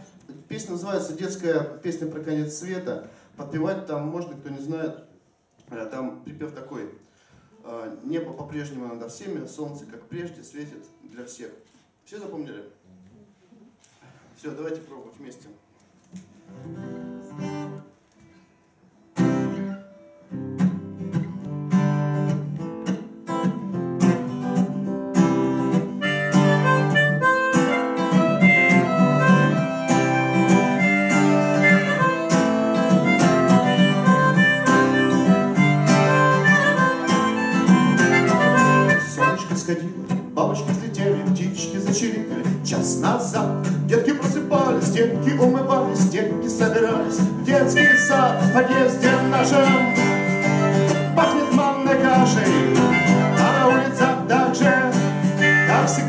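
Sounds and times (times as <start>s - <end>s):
acoustic guitar strumming: 16.3s - 56.0s
harmonica melody: 25.2s - 41.6s, 43.1s - 56.0s.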